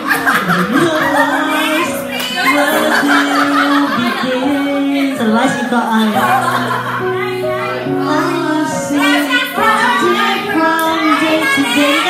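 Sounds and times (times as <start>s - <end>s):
woman singing into microphone: 0.0s - 6.8s, 7.5s - 12.0s
karaoke backing track: 0.0s - 12.0s.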